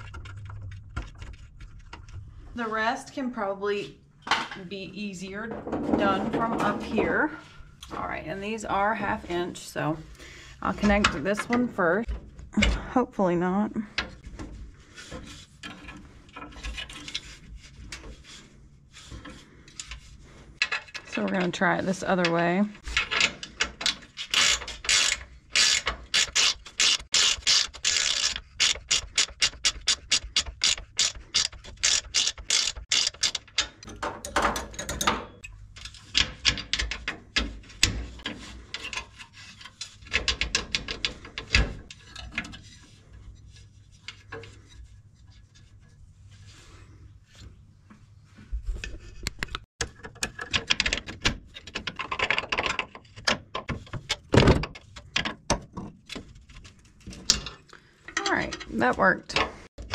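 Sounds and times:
ratcheting wrench clicking: 0:23.8 - 0:35.1.

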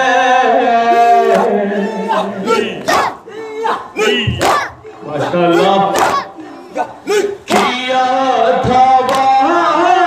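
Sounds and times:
men chanting together: 0:00.0 - 0:10.0
chest-beating slaps: 0:02.8 - 0:03.2, 0:04.3 - 0:04.8, 0:05.9 - 0:06.4, 0:07.5 - 0:07.8, 0:09.0 - 0:09.3.

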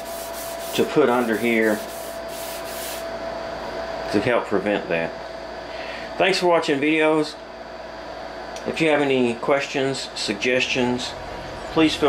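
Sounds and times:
scouring pad scrubbing metal: 0:00.0 - 0:02.7
steady hum: 0:00.0 - 0:12.0.

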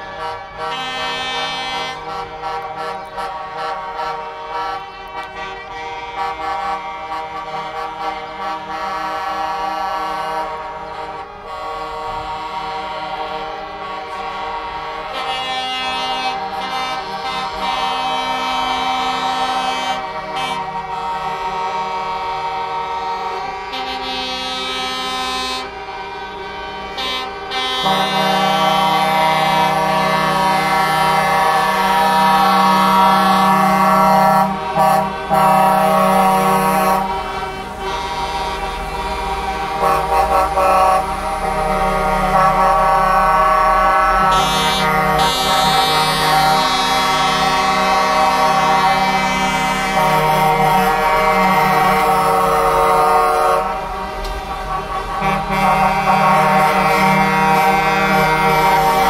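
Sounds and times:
diesel engines running: 0:00.0 - 0:59.0
truck air horns blasting: 0:00.0 - 0:59.0.

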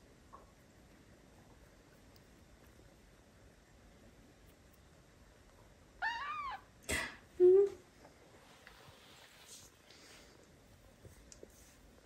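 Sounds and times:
kitten mewing: 0:06.0 - 0:06.7.

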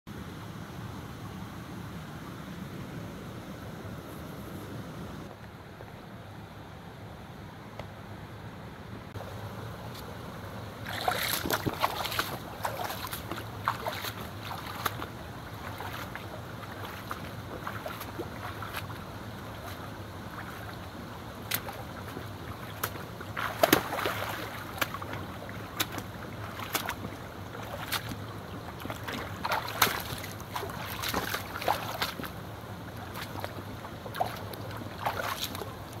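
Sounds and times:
flowing water rushing: 0:09.2 - 0:36.0
boots splashing through stream: 0:10.8 - 0:36.0.

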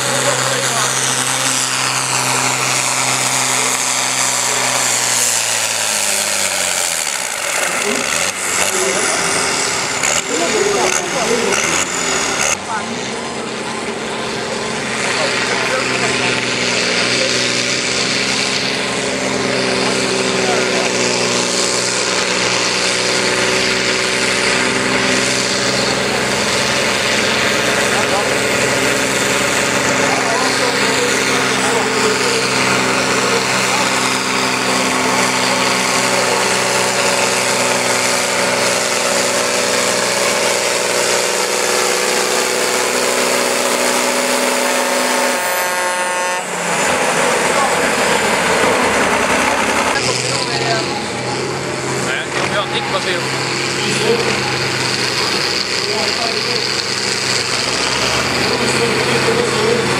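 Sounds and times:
second tractor engine under load: 0:00.0 - 0:59.9
tractor diesel engine droning: 0:00.0 - 0:59.9.

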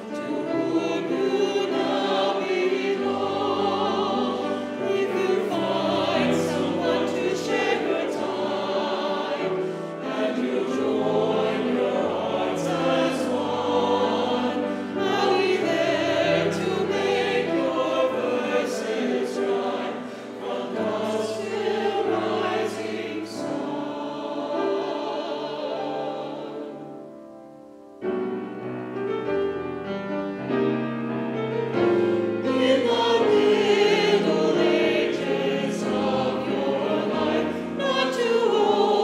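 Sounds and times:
mixed choir singing in parts: 0:00.0 - 0:27.4, 0:31.7 - 0:39.0.

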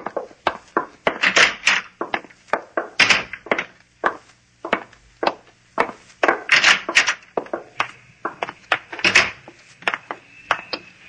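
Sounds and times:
sharp footsteps: 0:00.0 - 0:11.0.

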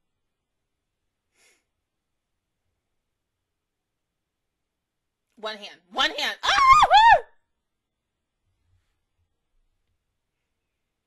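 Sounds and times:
person exclaiming oh: 0:06.4 - 0:07.2.

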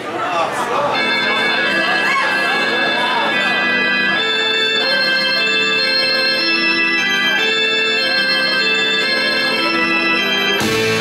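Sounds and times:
electric organ playing: 0:00.7 - 0:11.0.

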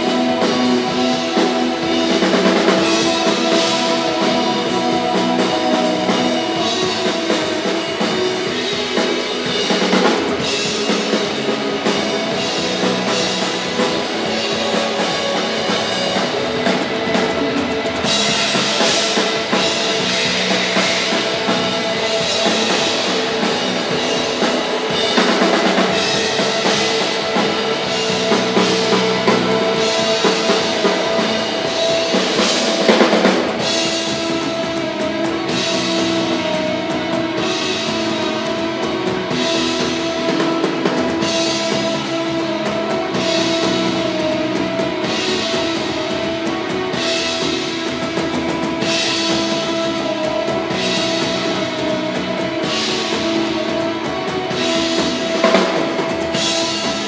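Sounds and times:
rock band playing: 0:00.0 - 0:57.0.

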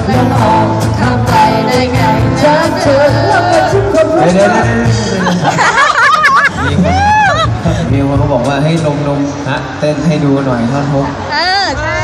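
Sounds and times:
audience chatter: 0:00.0 - 0:12.0
man talking into a microphone: 0:06.4 - 0:11.2.

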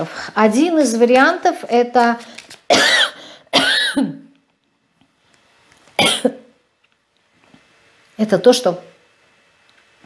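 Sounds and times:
woman coughing: 0:02.7 - 0:04.2, 0:06.0 - 0:06.5.

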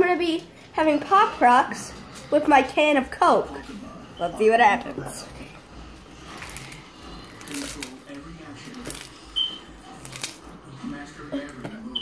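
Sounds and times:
candy packet crinkling: 0:06.3 - 0:09.3.

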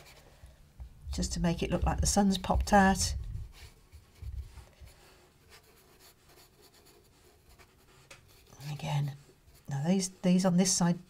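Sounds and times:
brush strokes on paper: 0:01.3 - 0:10.4.

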